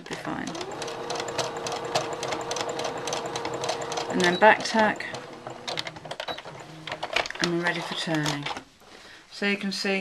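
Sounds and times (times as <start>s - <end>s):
sewing machine running: 0.4s - 7.0s.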